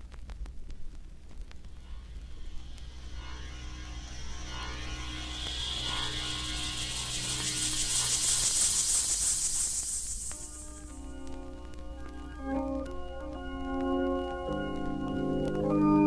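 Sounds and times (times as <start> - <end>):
low hum from record: 0.0 - 15.2
rising whoosh of high noise: 1.6 - 13.0
faint sustained notes: 1.6 - 15.6.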